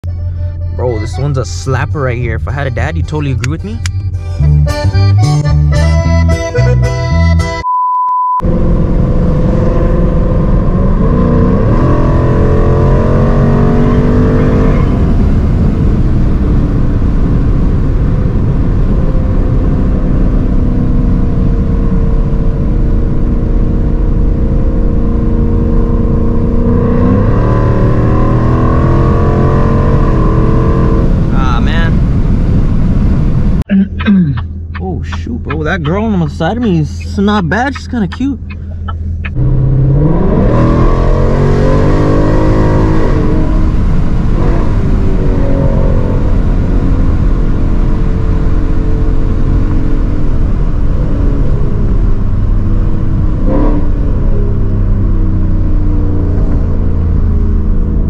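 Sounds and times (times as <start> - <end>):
car engine rumbling under load: 0.0 - 7.6, 8.4 - 58.0
song playing: 0.0 - 7.7, 33.7 - 39.4.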